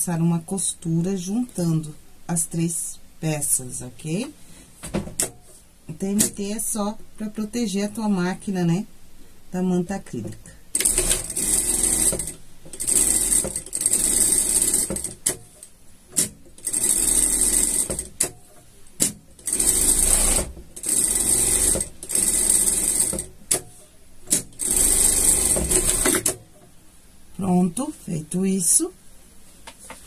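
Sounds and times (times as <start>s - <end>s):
sewing machine sewing: 10.8s - 15.4s, 16.2s - 18.2s, 19.4s - 23.3s, 24.3s - 26.4s.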